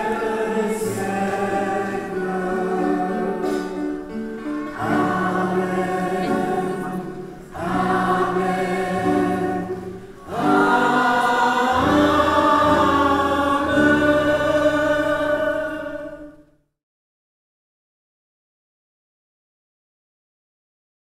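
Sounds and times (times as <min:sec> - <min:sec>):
choir and congregation singing hymn: 0:00.0 - 0:16.5.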